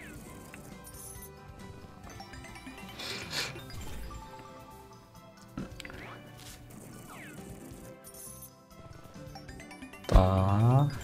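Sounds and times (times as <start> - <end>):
slot game background music: 0.0 - 11.0.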